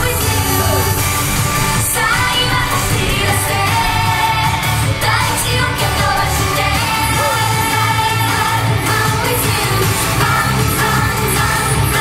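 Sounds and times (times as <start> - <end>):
girl group singing: 0.0 - 12.0
pop backing track with beat: 0.0 - 12.0.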